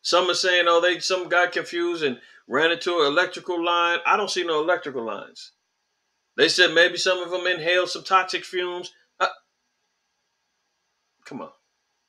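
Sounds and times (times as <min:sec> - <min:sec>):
man saying uh: 0:00.1 - 0:05.4, 0:06.4 - 0:08.9, 0:11.3 - 0:11.5.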